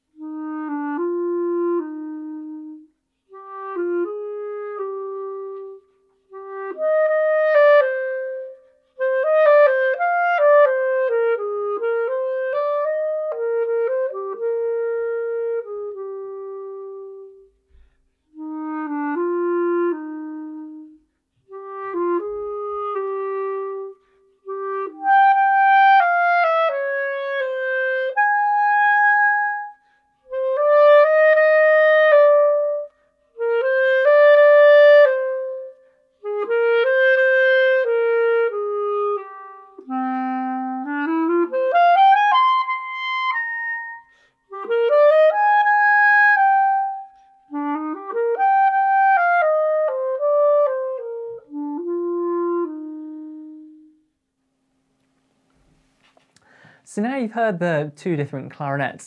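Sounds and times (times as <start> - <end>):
solo clarinet melody: 0.0 - 54.6.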